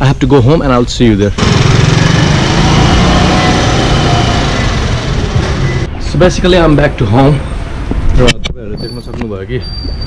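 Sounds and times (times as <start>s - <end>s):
motor scooter engine running: 1.4s - 5.6s.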